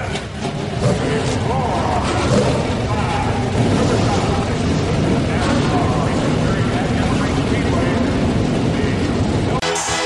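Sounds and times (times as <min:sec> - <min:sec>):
steady roar with voices: 0:00.0 - 0:09.7
electronic dance music: 0:09.6 - 0:10.0.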